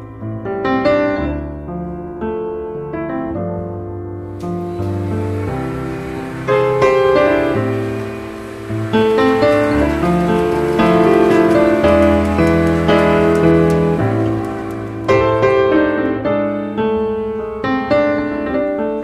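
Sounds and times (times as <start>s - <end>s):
piano chords: 0.0s - 19.0s.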